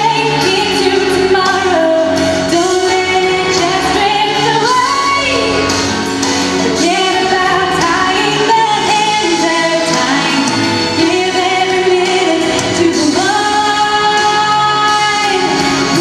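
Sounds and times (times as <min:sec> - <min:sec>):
musical accompaniment: 0:00.0 - 0:16.0
woman singing into microphone: 0:00.0 - 0:16.0.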